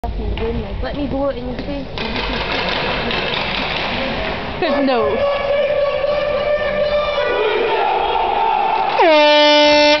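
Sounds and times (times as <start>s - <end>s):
horn blowing: 5.0s - 8.2s, 8.9s - 10.0s.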